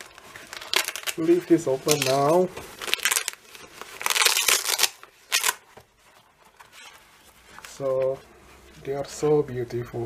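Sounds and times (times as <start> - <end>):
cloth rustling and scraping: 0.0 - 9.0.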